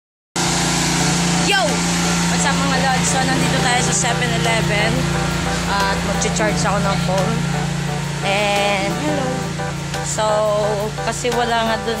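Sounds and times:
motor drone: 0.4s - 12.0s.

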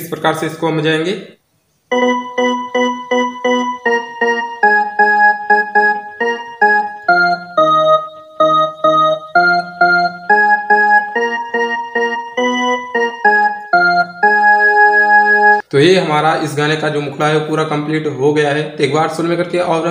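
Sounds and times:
mini keyboard single-note melody: 1.9s - 15.7s.

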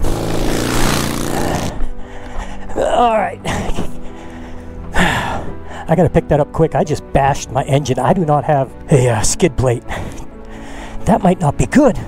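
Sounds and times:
motorcycle hitting ground: 0.0s - 1.6s
motorcycle engine revving: 0.0s - 1.9s.

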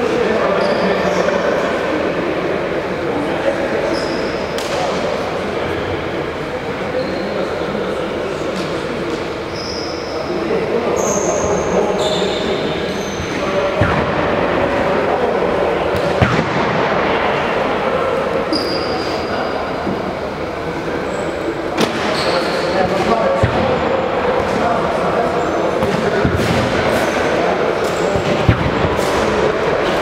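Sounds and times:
players talking and calling: 0.0s - 30.0s
ball thuds: 13.8s - 14.6s.

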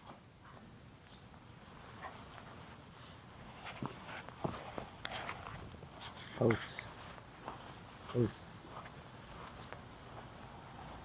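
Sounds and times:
light clicks and scuffs: 3.5s - 11.0s
footsteps on damp sand: 4.2s - 11.0s.

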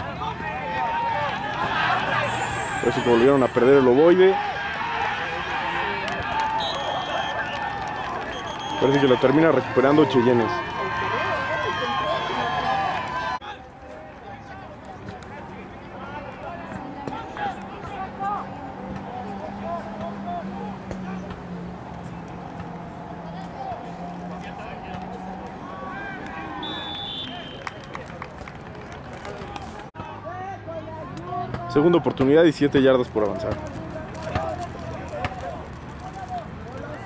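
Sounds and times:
people calling and talking outdoors: 0.0s - 37.0s
high whistle: 2.2s - 3.7s, 6.5s - 7.5s, 8.3s - 9.3s, 26.6s - 27.8s.

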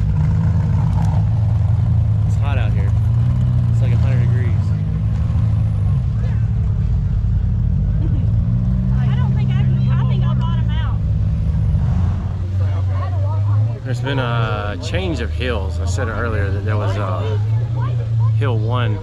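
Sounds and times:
engine droning: 0.0s - 19.0s
faint voices talking: 2.2s - 19.0s.

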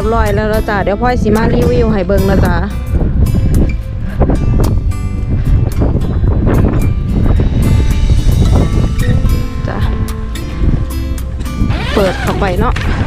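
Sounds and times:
background music with a beat: 0.0s - 11.7s
wind buffeting microphone: 0.0s - 13.0s.

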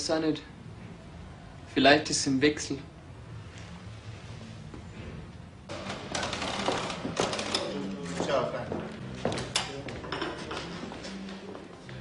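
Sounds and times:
low background music: 0.0s - 12.0s
clattering and knocking: 5.7s - 7.8s.

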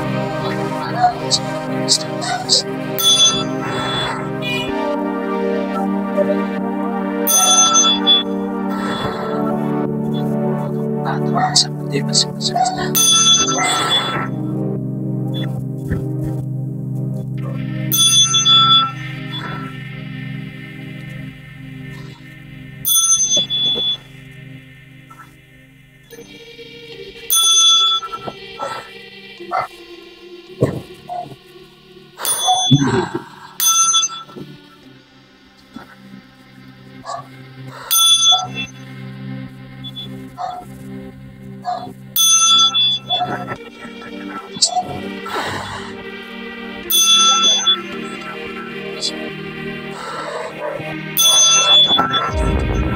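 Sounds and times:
brass chime bell ringing: 0.0s - 10.4s, 12.2s - 14.5s, 17.9s - 20.1s, 22.1s - 24.1s, 32.2s - 32.8s, 33.6s - 34.5s, 42.2s - 43.6s, 46.9s - 49.3s, 50.2s - 52.9s
background music: 0.0s - 52.9s
steady low drone: 0.0s - 52.9s
metal chime bell ringing: 3.0s - 4.0s, 7.3s - 8.1s, 13.0s - 14.1s, 17.9s - 19.0s, 22.8s - 24.0s, 33.6s - 34.4s, 46.9s - 47.8s.

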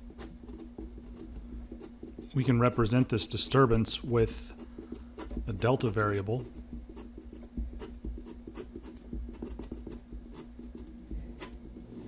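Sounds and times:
faint steady hum: 0.0s - 12.0s
pen scratching on paper: 0.0s - 12.0s.

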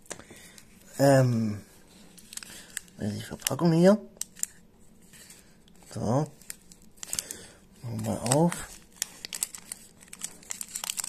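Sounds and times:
foil wrapper crinkling: 2.1s - 11.0s.

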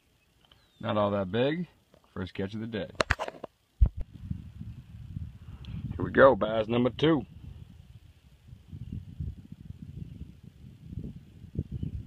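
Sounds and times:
microphone handling thumps: 3.0s - 4.7s.

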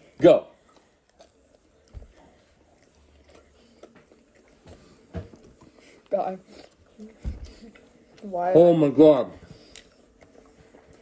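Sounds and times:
people chewing: 0.0s - 11.0s.

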